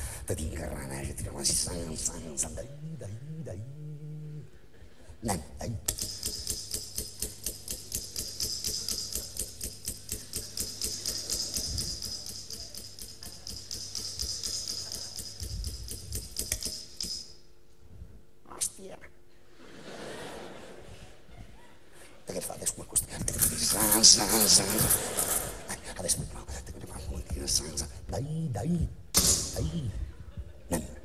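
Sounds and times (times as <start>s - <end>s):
low steady hum: 0.0s - 31.0s
rapid mechanical clicking: 5.8s - 17.3s.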